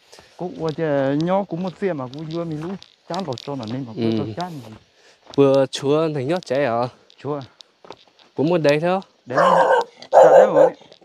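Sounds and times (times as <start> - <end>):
dog barking: 9.3 - 10.8.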